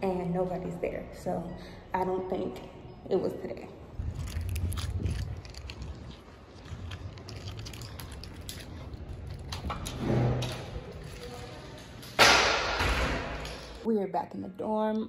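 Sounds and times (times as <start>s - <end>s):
wind rumble on microphone: 4.0s - 10.5s.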